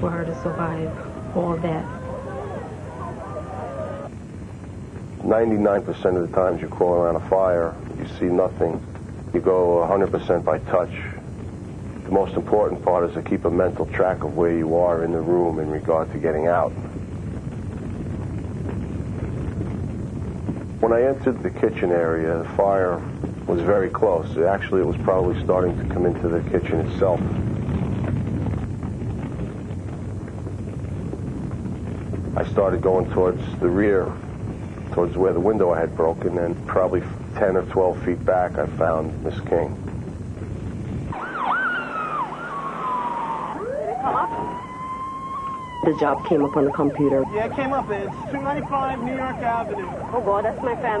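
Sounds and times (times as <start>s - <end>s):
emergency vehicle siren: 0.0s - 4.1s, 41.1s - 51.0s
house fire burning: 0.0s - 51.0s.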